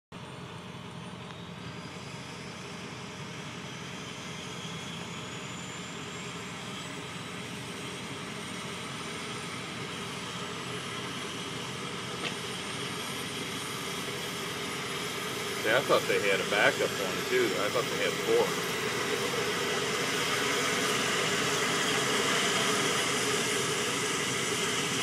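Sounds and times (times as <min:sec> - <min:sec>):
helicopter turbine whine: 0:00.2 - 0:25.0.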